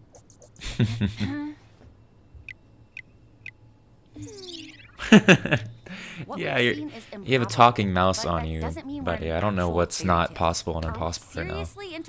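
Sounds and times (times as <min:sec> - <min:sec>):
cartoon mouse squeaks: 0:04.2 - 0:05.0
falling gliding comic sound effect: 0:04.2 - 0:05.1.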